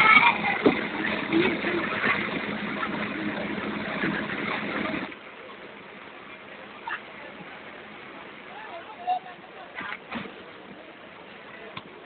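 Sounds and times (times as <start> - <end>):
train rumble and clatter: 0.0 - 5.3.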